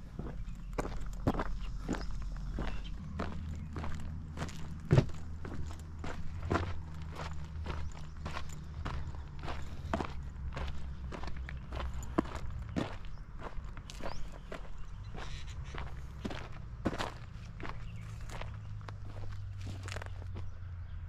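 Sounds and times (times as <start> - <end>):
footsteps on gravel path: 0.0 - 20.7.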